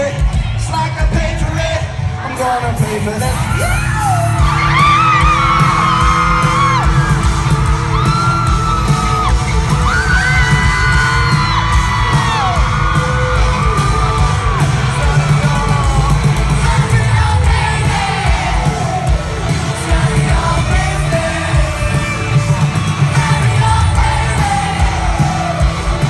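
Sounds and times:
live rock band playing: 0.0 - 26.0
audience screaming and whooping: 1.8 - 26.0.

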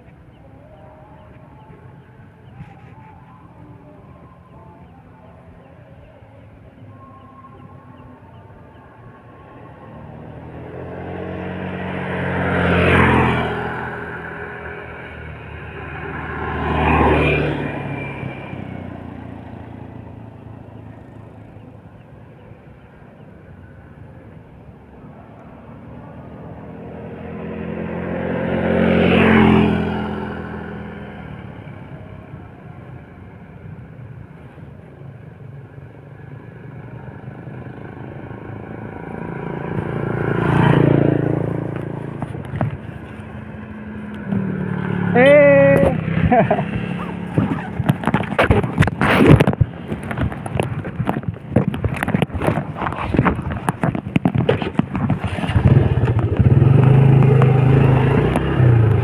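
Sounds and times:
vehicles passing by: 0.0 - 59.0.

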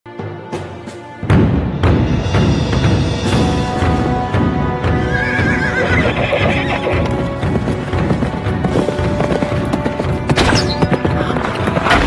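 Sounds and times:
galloping hooves: 3.3 - 12.0
horse neighing: 4.9 - 7.2.

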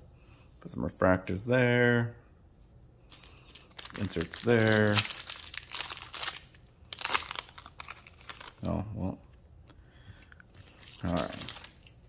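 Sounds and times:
foil wrapper crinkling: 3.1 - 8.8, 10.2 - 12.0.

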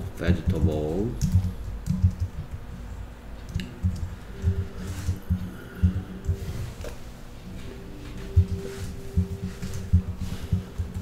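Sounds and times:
computer keyboard typing: 0.7 - 2.6.

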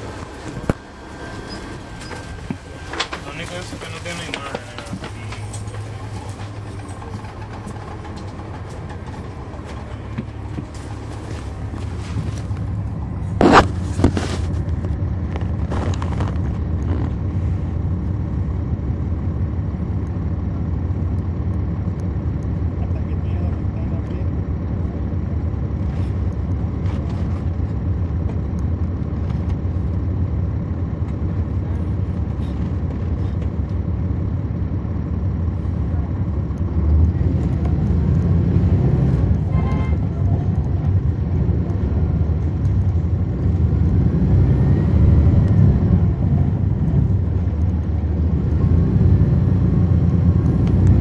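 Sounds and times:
bus diesel engine droning: 0.0 - 51.0.

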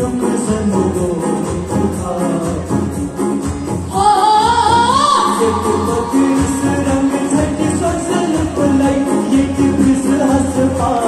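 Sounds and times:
rhythmic accompaniment: 0.0 - 11.0
group singing over loudspeakers: 4.0 - 11.0.

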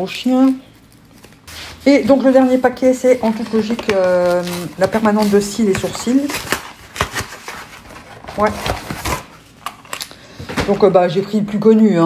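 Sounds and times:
parcel being unpacked clicks: 9.0 - 10.2.

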